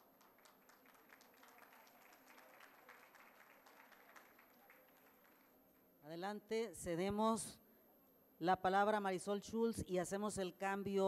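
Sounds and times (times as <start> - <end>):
faint applause: 0.0 - 5.5.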